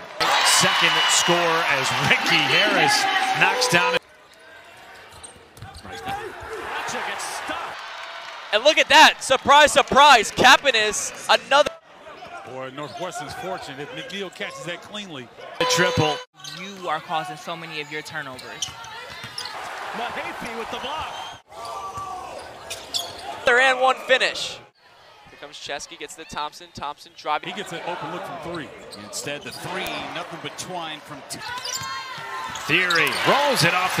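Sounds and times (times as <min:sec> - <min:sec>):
crowd background: 0:00.0 - 0:18.2, 0:18.8 - 0:34.0.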